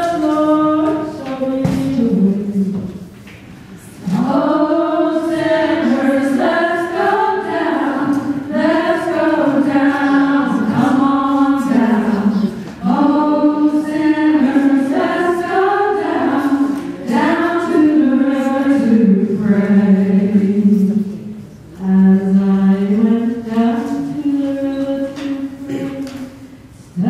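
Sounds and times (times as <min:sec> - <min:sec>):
women singing together: 0:00.0 - 0:03.0, 0:04.0 - 0:27.0.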